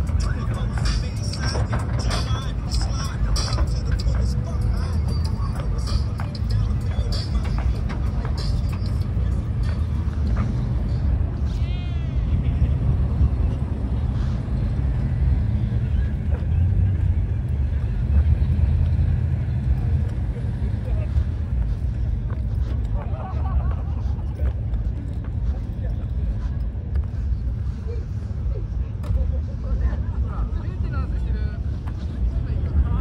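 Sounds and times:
people talking: 0.0 - 10.5, 11.4 - 14.3, 15.6 - 33.0
car engines rumbling: 0.0 - 33.0.

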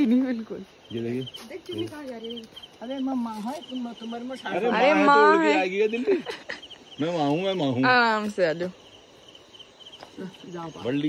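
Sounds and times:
women talking: 0.0 - 0.8, 1.4 - 5.7, 7.8 - 8.9, 10.0 - 11.0
insects chirping: 0.0 - 11.0.

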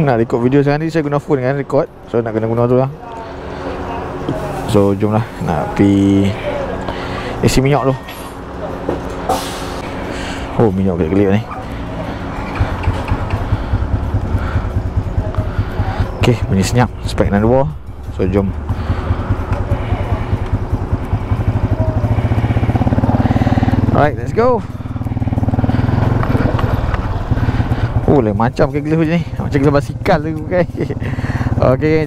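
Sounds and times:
moped engine idling: 1.9 - 32.0.

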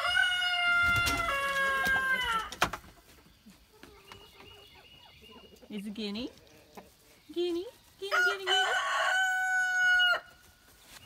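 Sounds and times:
rooster crowing: 0.0 - 2.5, 8.1 - 10.3.

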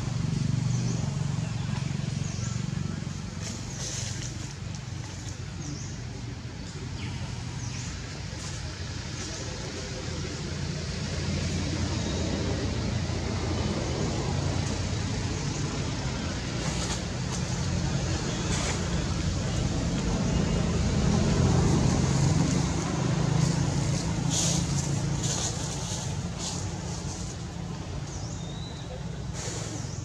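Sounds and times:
vehicle engine rumble: 0.0 - 30.0.

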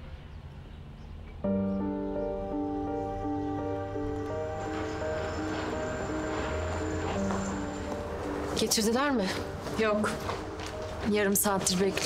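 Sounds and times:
slow melody of held notes: 1.4 - 12.0.

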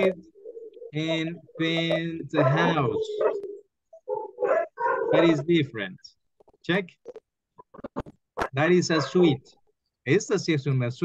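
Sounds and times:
man speaking in fragments: 5.1 - 6.0.

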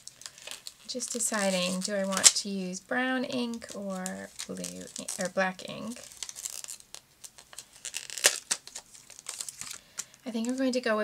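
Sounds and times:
paper and plastic rustling: 0.0 - 2.6, 3.3 - 10.8.

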